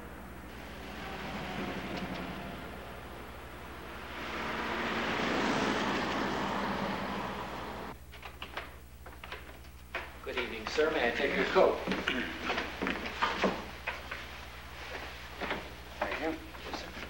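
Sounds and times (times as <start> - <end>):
motor vehicle passing by: 0.0 - 8.0.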